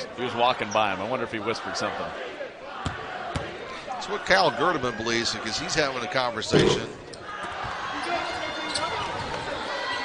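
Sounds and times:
murmur of arena crowd: 0:00.0 - 0:10.0.

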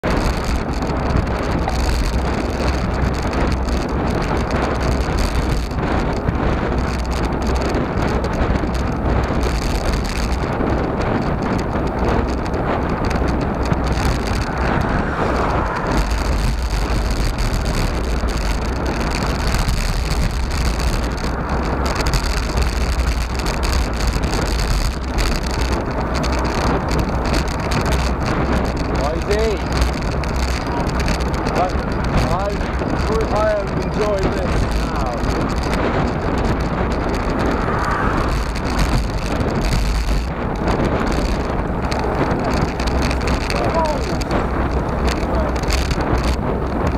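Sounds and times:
tyre noise on asphalt: 0:00.0 - 0:46.9
wind rushing on microphone: 0:00.0 - 0:46.9.

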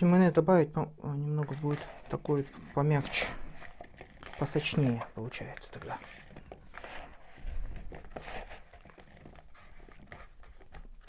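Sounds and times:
potato pieces tossed in plastic bowl: 0:00.0 - 0:11.0.

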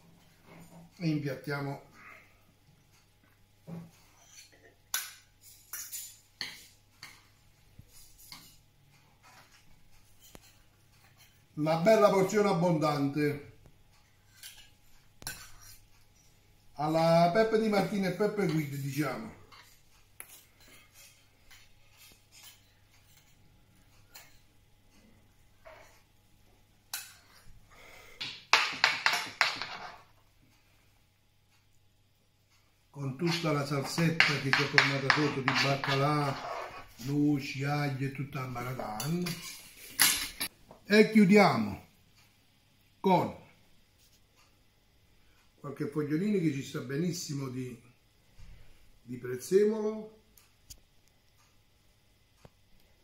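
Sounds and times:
utensils scraping metal pan: 0:33.2 - 0:37.1.

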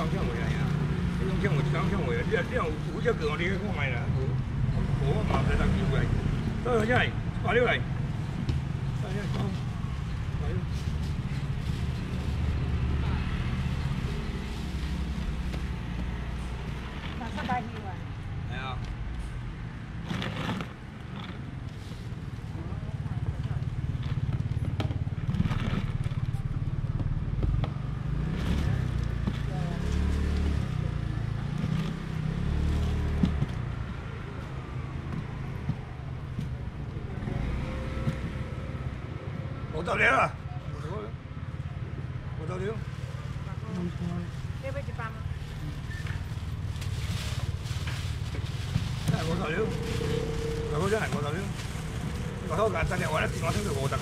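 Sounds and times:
indistinct voices: 0:49.1 - 0:54.0.

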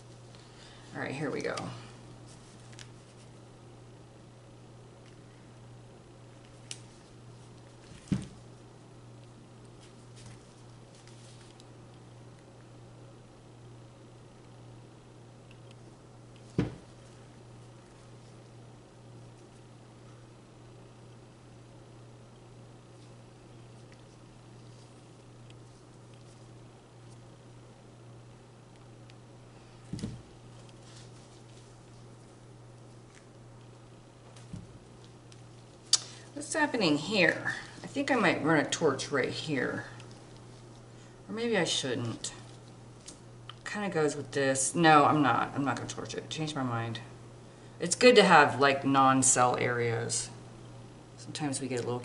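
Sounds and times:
low steady hum: 0:00.0 - 0:52.0.

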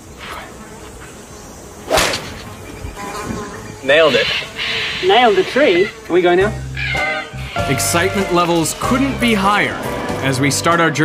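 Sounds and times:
golf club striking ball: 0:01.9 - 0:02.6.

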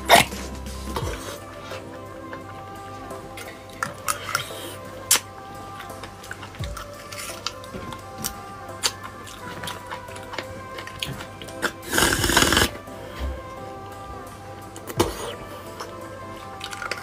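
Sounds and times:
background music: 0:00.0 - 0:17.0
loud slurp: 0:11.6 - 0:12.8.

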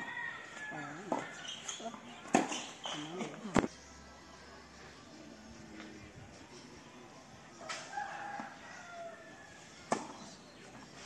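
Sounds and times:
faint distant sounds: 0:00.0 - 0:11.0.

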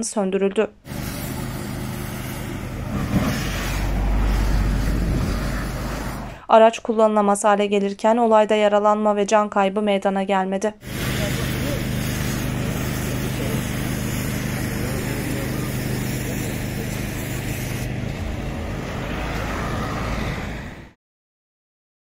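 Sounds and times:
fire engine idling: 0:00.9 - 0:06.4, 0:10.8 - 0:19.0
hiss: 0:00.9 - 0:06.4, 0:10.8 - 0:17.9
faint voices: 0:12.8 - 0:17.8.

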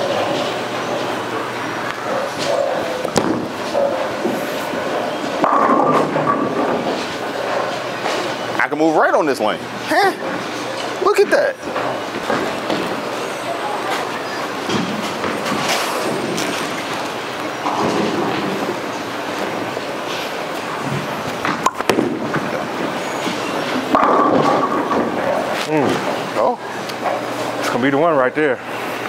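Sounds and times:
bowling ball rolling: 0:00.0 - 0:08.6, 0:11.6 - 0:27.6
bowling alley din: 0:00.0 - 0:27.6.

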